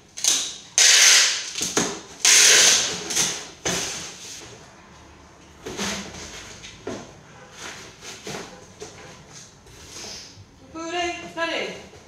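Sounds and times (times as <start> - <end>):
packing tape unrolling from tape gun: 0.1 - 4.4
tape rasping as pressed and cut: 0.2 - 4.1.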